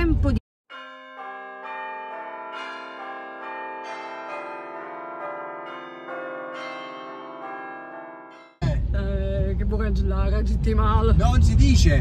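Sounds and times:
bell-like chime melody: 0.7s - 8.7s.

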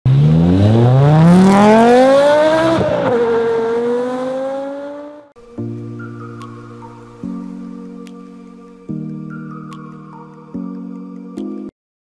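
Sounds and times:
car engine accelerating: 0.1s - 5.4s
steady music chord: 5.4s - 11.3s.

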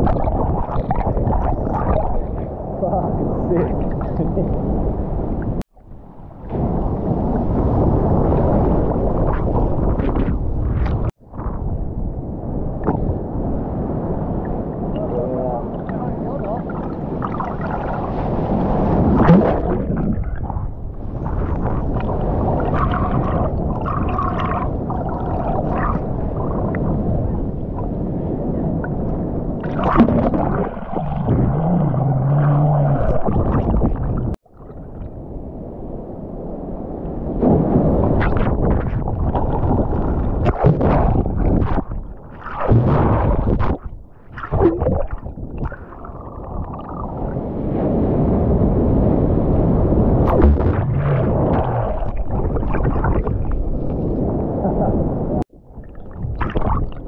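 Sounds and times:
water bubbling: 0.0s - 4.6s, 15.6s - 28.0s, 28.7s - 35.2s, 37.8s - 47.5s, 50.2s - 54.4s, 55.5s - 57.0s
seawater sloshing and gurgling: 0.0s - 11.6s, 14.8s - 35.2s, 37.4s - 47.6s, 50.2s - 57.0s
sharp water splash: 16.8s - 20.4s, 29.6s - 34.4s, 37.4s - 47.0s, 56.0s - 57.0s
whitewater churning: 29.6s - 34.4s.

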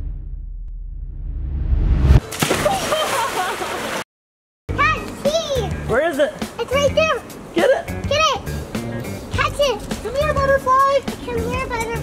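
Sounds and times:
splash into swimming pool: 2.2s - 4.0s
music: 4.7s - 12.0s
voices: 4.7s - 12.0s
child's high voice: 4.8s - 5.8s, 6.6s - 7.3s, 8.0s - 8.5s, 9.4s - 12.0s.

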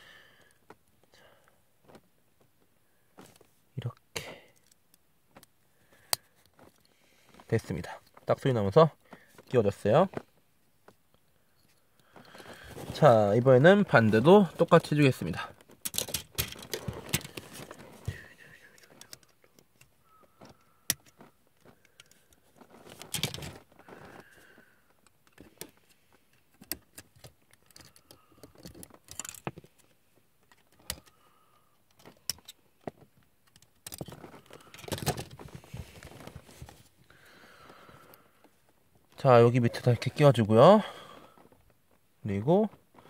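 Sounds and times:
plastic parts clicking together: 14.7s - 18.2s, 18.8s - 24.2s, 24.9s - 31.2s, 31.8s - 36.3s.

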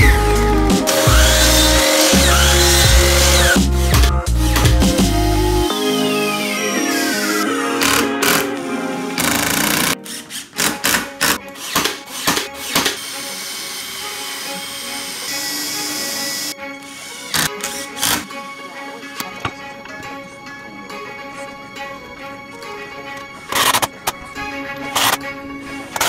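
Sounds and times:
cordless drill boring: 0.0s - 4.7s, 9.2s - 18.3s
background music: 0.0s - 26.0s
impact driver hammering screws: 0.9s - 4.7s, 9.2s - 14.0s, 17.3s - 18.3s.

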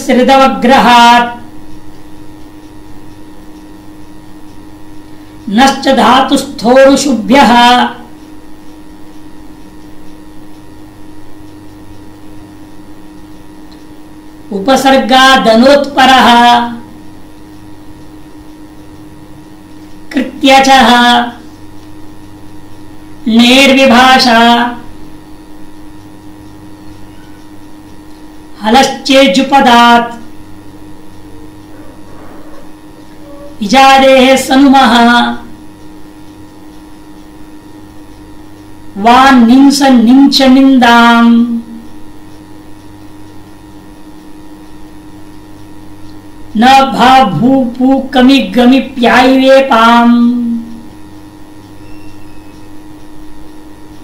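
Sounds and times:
background hum: 0.0s - 54.0s.

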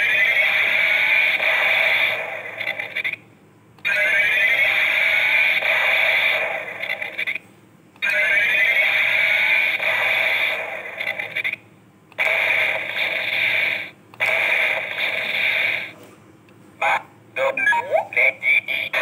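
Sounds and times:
toy electronic sound loop: 3.8s - 7.4s, 8.0s - 11.6s, 12.2s - 15.9s, 16.8s - 19.0s.

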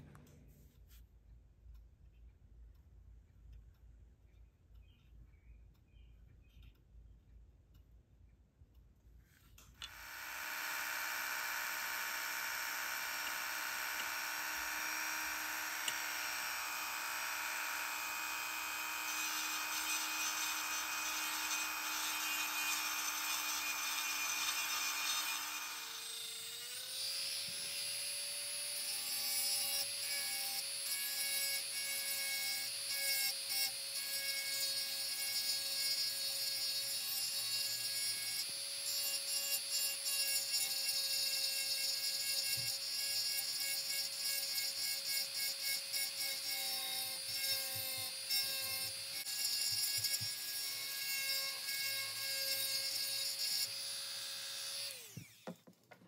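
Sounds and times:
bit grinding into wood: 9.8s - 27.8s
rotary tool whine: 9.8s - 55.7s.

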